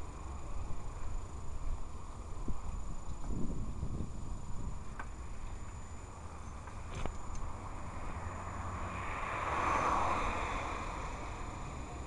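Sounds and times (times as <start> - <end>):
wind buffeting microphone: 2.4 - 5.0
rushing noise: 7.7 - 12.0.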